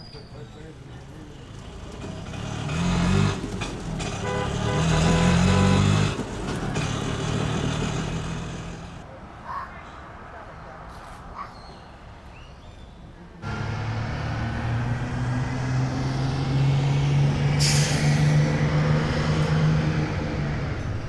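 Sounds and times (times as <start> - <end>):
street traffic: 0.0 - 21.0
vehicle engine running close: 0.6 - 9.0, 13.4 - 21.0.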